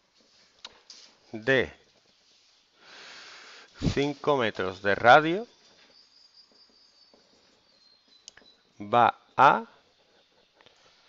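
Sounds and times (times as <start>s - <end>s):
marker pen squeaking on whiteboard: 5.4s - 8.8s.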